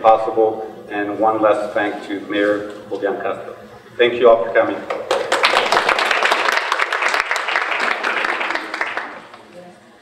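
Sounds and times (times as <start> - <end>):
audience applauding: 4.9 - 9.6.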